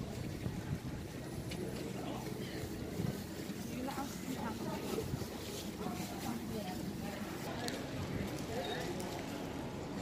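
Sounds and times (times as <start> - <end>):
wind on microphone: 0.0 - 1.4
voices of passers-by: 0.0 - 10.0.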